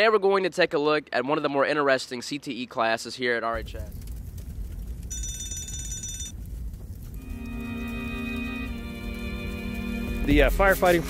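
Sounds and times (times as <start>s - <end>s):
low rumble: 3.6s - 11.0s
bell ringing clatter: 5.1s - 6.4s.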